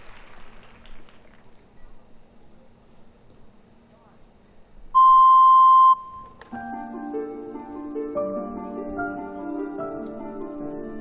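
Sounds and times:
electronic beep: 0:05.0 - 0:06.4
soft music with sustained notes: 0:06.0 - 0:11.0.

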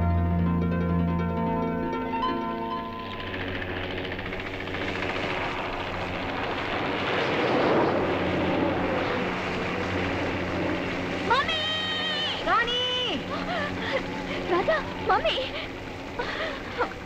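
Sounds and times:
helicopter engine and rotor: 0:00.6 - 0:17.0.

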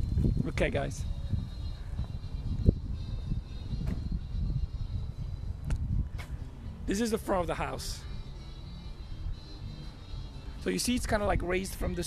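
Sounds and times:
wind rumble on microphone: 0:00.0 - 0:08.3.

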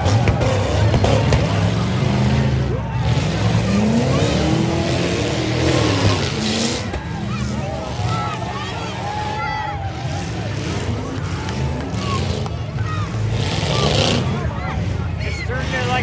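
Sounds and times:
truck engines revving: 0:00.0 - 0:16.0.

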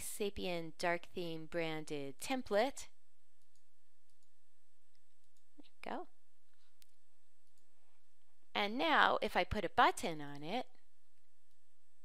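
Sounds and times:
computer mouse clicks: 0:03.4 - 0:05.7, 0:06.5 - 0:07.7.

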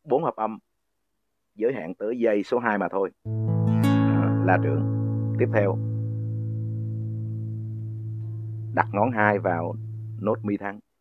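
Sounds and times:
classical guitar chord ringing: 0:03.3 - 0:10.5.

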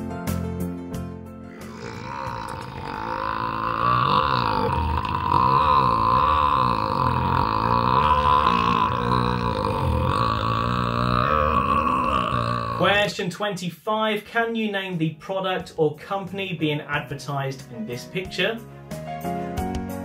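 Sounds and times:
man burping: 0:01.5 - 0:13.1.

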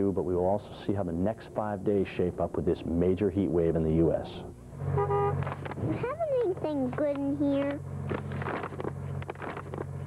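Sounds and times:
steady low hum: 0:00.0 - 0:10.0
paper bag rustling and crackling: 0:08.1 - 0:10.0.

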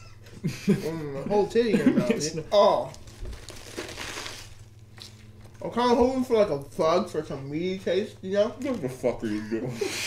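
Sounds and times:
lettuce crunching while chewed: 0:02.9 - 0:05.6.

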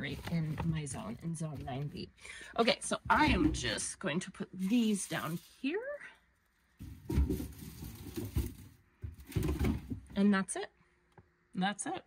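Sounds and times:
mesh bags rustling and knocking: 0:04.6 - 0:05.7, 0:06.7 - 0:10.1.

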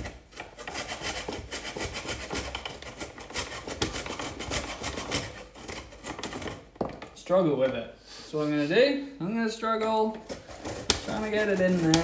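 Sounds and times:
ginger grated on hand grater: 0:00.0 - 0:06.5, 0:10.4 - 0:12.0.

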